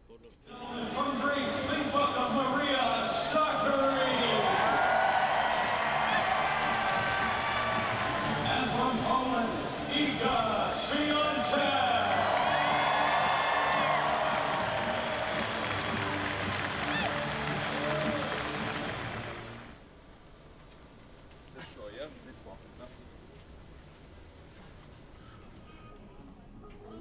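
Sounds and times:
stadium crowd cheering: 0:00.5 - 0:19.8.

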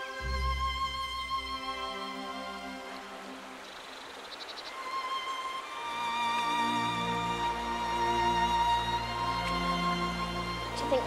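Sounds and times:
orchestral music: 0:00.0 - 0:03.6, 0:04.8 - 0:11.0
small waterfall rushing: 0:00.0 - 0:11.0.

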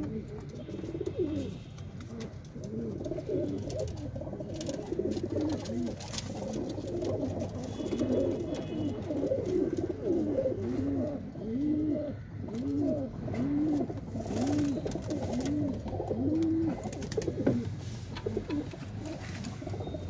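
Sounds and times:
pigeons cooing: 0:00.0 - 0:20.0.

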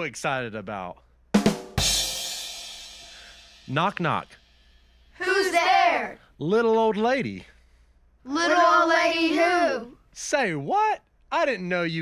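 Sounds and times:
comedy drum sting: 0:01.4 - 0:05.2
cymbal crash ringing: 0:01.8 - 0:05.2.

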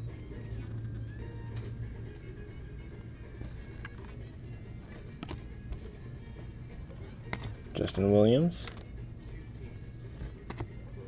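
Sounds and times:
quiet background music: 0:00.0 - 0:11.0
steady low hum: 0:00.0 - 0:11.0
cards being flipped: 0:00.1 - 0:11.0.

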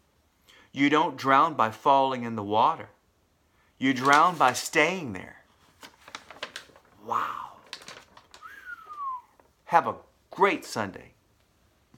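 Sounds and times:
man's wordless vocal sound: 0:07.0 - 0:07.7.

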